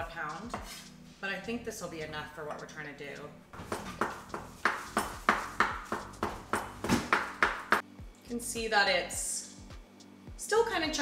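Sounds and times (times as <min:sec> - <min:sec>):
knife chopping on cutting board: 0:03.6 - 0:07.8.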